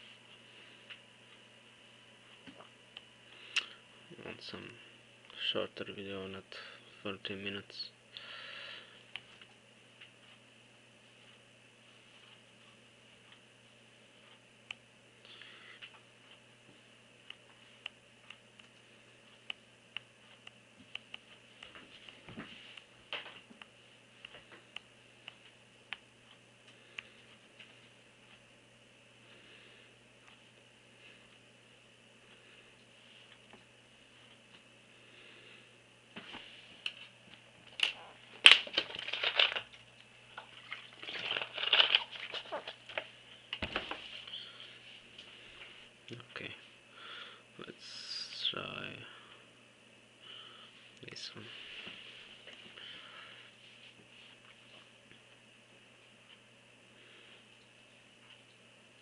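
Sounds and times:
faint steady hum: 0.0 - 59.0
rustling and handling noise: 36.1 - 46.0.

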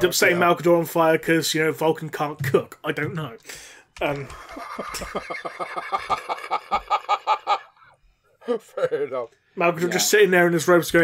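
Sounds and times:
person laughing: 4.2 - 7.9.

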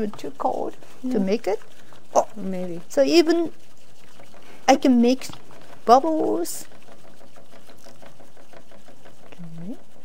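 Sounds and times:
tea whisk swishing in bowl: 0.0 - 10.0.

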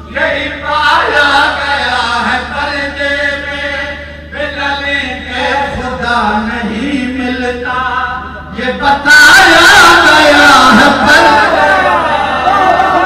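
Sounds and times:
man chanting through loudspeakers: 0.0 - 11.9.

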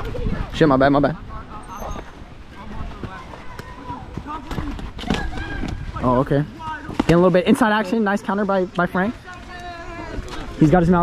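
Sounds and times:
wind rumble on microphone: 0.0 - 3.0.

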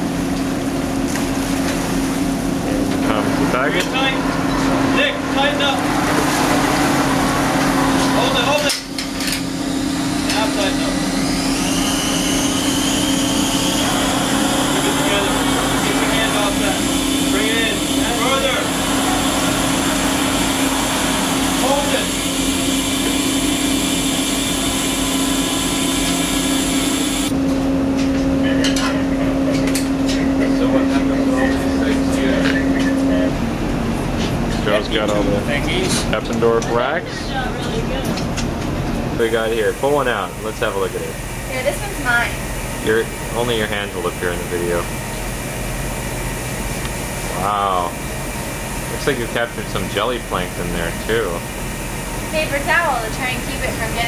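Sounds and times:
winch mechanical drone: 0.0 - 54.0
faint rising whine: 10.6 - 27.3.

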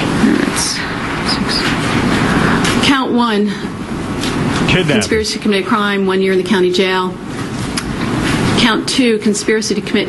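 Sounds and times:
steady rushing noise: 0.0 - 9.6.

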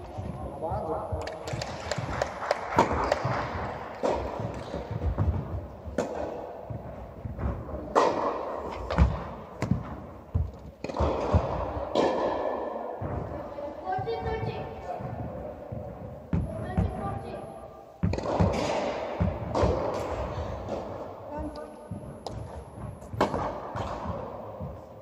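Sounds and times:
tennis balls hit by rackets: 1.2 - 17.2, 17.9 - 25.0
tennis balls bouncing: 1.2 - 17.3, 18.0 - 25.0.

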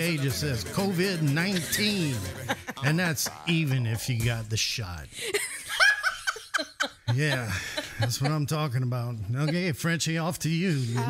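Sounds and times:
person laughing: 1.4 - 3.5, 5.1 - 8.6.

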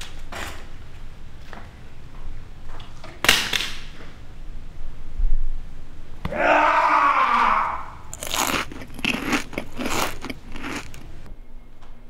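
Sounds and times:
crunching sounds: 8.1 - 11.3.

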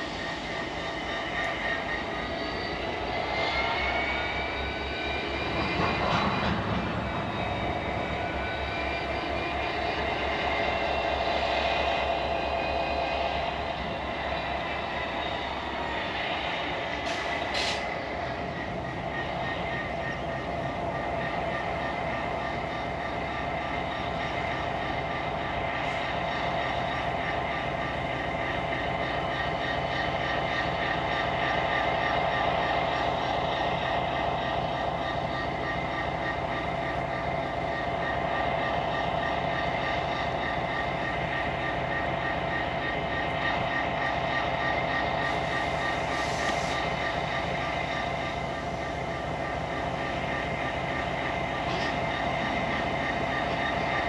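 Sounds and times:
high gliding whining tones: 0.0 - 54.0
locomotive engine and wheels rumbling: 0.0 - 54.0.

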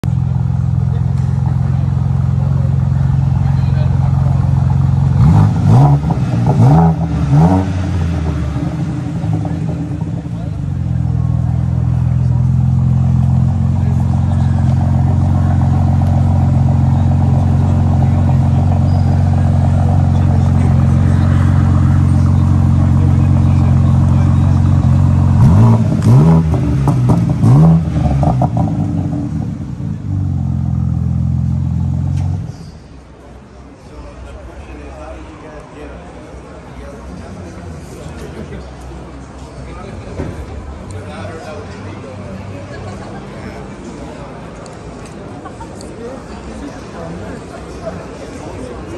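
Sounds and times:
car engine idling and revving: 0.0 - 33.8.

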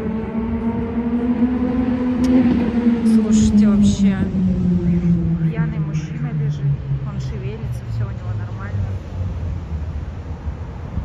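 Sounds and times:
city street traffic rumble: 0.0 - 11.0.

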